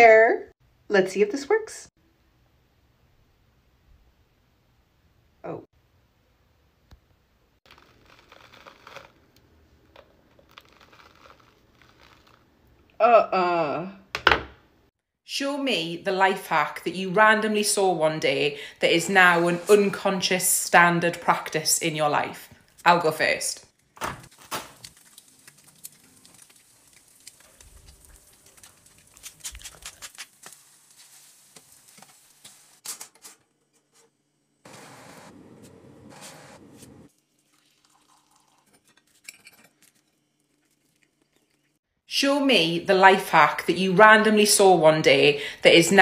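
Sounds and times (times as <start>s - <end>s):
eggs frying in a pan: 7.6s - 9.4s, 24.3s - 32.8s, 37.1s - 41.8s
pepper mill grinding: 7.7s - 9.2s, 10.0s - 12.4s, 24.8s - 30.6s.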